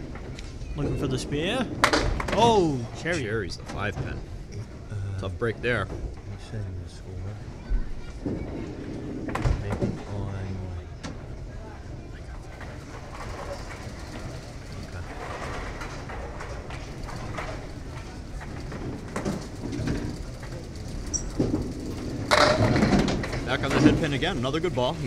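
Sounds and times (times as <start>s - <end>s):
murmur of voices: 0.0s - 25.0s.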